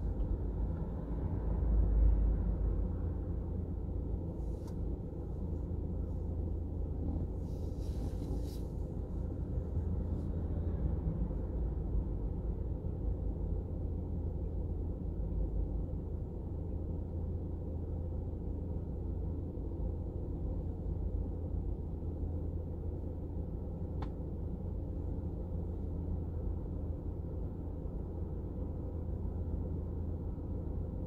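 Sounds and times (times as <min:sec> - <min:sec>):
low rumble inside car cabin: 0:00.0 - 0:31.0.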